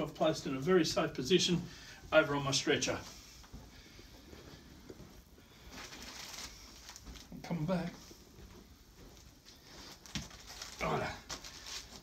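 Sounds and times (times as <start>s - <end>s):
light rustle of bandages: 1.0s - 12.0s
soft footsteps on hard floor: 2.0s - 10.6s.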